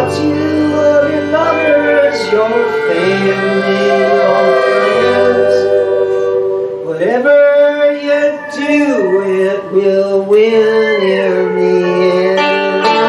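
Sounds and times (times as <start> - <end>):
pedal steel guitar: 0.0 - 13.0.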